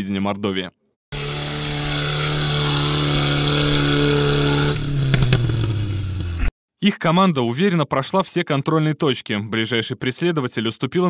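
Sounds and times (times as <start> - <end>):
vehicle engine running under load: 1.2 - 6.5
sharp knocks: 5.0 - 5.8.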